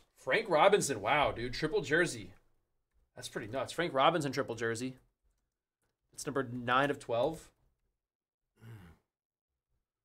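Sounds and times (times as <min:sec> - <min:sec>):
man sighing: 0:08.6 - 0:09.1.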